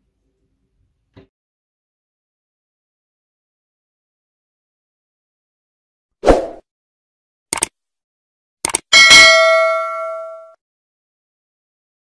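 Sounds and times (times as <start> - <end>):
brief clicks: 7.5 - 7.8, 8.6 - 8.9
bell ding: 8.9 - 10.6.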